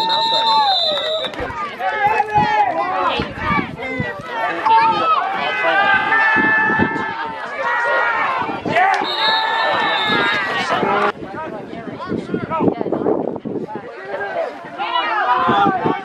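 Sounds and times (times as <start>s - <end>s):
people shouting and yelling: 0.0s - 16.0s.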